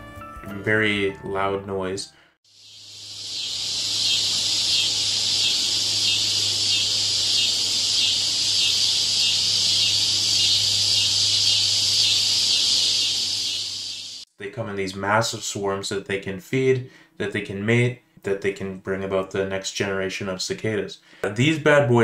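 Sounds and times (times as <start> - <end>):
cicadas buzzing: 2.5 - 14.3.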